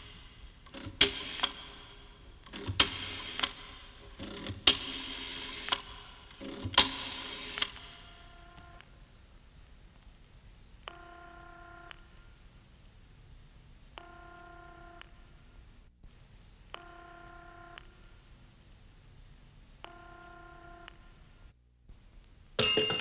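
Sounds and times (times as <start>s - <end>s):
telephone ringing tone: 10.9s - 12.0s.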